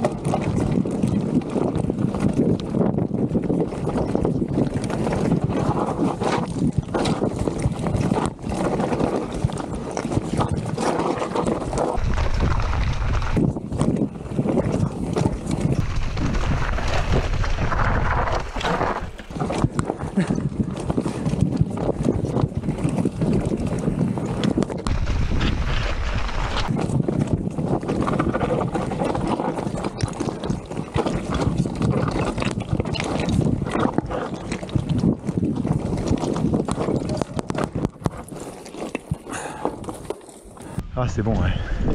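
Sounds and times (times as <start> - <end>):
deep wind rumble: 0.0 - 38.4, 40.5 - 41.9
wind rushing over microphone: 0.0 - 41.9
bike clattering on rocks: 10.8 - 14.0, 15.2 - 20.0
tyres rolling over loose stones: 11.2 - 13.5, 15.8 - 20.0, 24.9 - 26.9.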